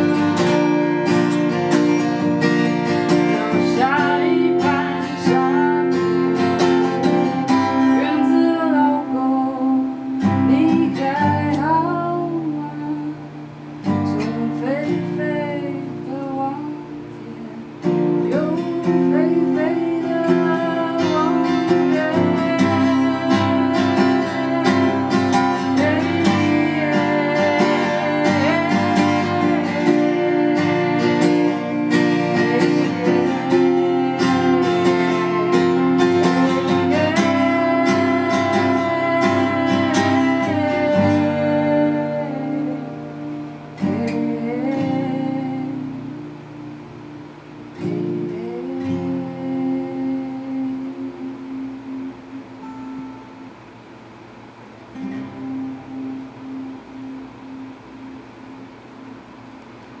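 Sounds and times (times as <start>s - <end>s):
person singing: 0.0s - 46.4s, 47.8s - 53.4s
acoustic guitar strumming: 0.0s - 60.0s.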